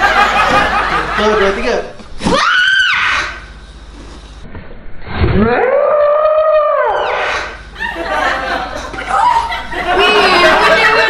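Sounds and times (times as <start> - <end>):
short shrieks: 2.2 - 3.6, 5.0 - 7.7
woman screaming: 2.3 - 3.4.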